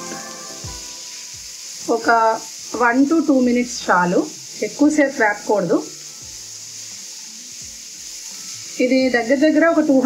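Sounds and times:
mushrooms sizzling in a pan: 0.0s - 10.0s.

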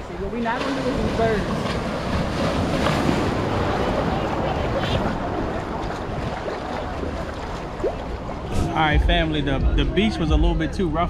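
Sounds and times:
ocean surf breaking: 0.0s - 9.3s
wind buffeting microphone: 0.0s - 10.5s.

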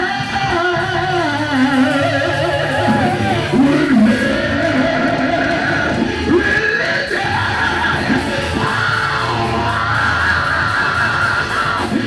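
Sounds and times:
band with electric guitar and bass: 0.0s - 12.0s
man singing into microphone: 0.0s - 12.0s.

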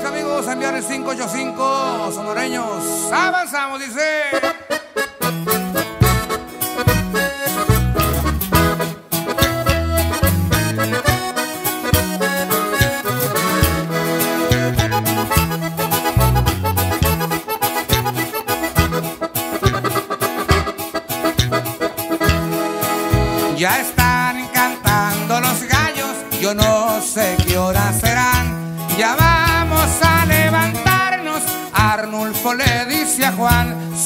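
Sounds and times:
accordion melody: 0.0s - 34.0s
rhythmic backing: 4.3s - 34.0s
steady bass line: 5.0s - 34.0s.

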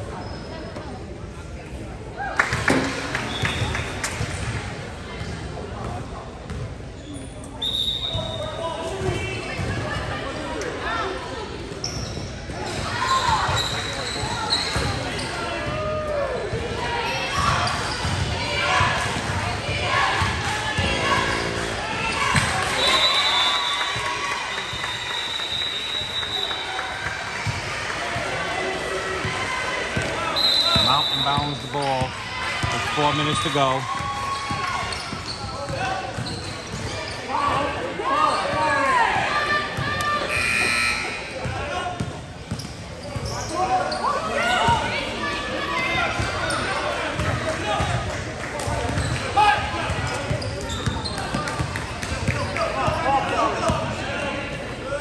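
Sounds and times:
people talking and calling out: 27.6s - 55.0s.

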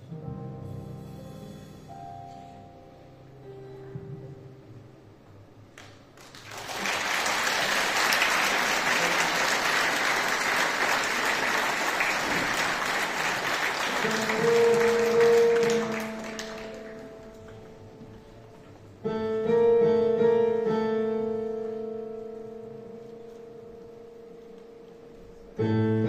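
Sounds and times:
audience applauding: 5.8s - 18.0s
keyboard held notes: 13.7s - 26.0s.

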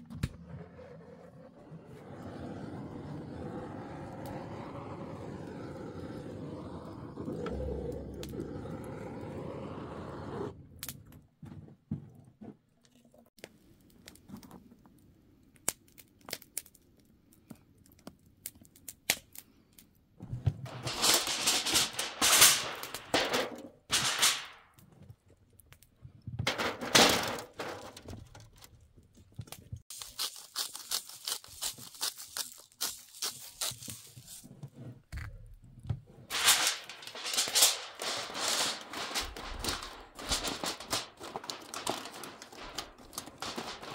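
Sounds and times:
packaging tearing and crinkling: 20.7s - 23.2s, 29.9s - 34.5s, 36.3s - 43.9s.

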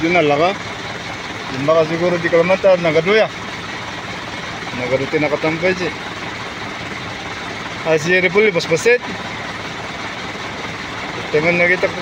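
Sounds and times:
truck engines idling: 0.0s - 12.0s.

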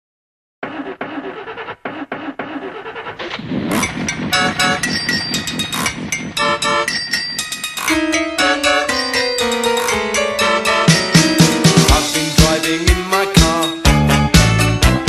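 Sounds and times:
car engine running: 0.6s - 8.2s
upbeat music with drums and keyboard: 3.2s - 15.0s.

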